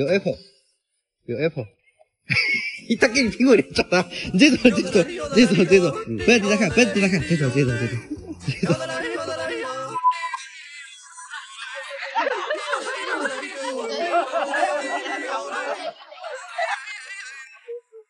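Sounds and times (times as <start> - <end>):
person speaking: 0.0 - 0.4, 2.5 - 9.9
music: 2.3 - 10.0
high-pitched voices singing: 2.3 - 18.0.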